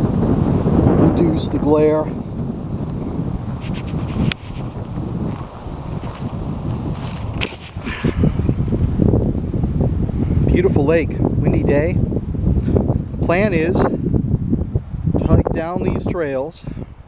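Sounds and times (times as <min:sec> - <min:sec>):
wind buffeting the microphone: 0:00.0 - 0:17.0.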